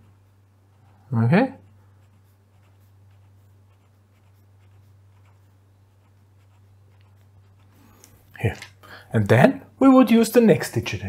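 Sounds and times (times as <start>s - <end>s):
pen scratching on paper: 0.0s - 8.0s.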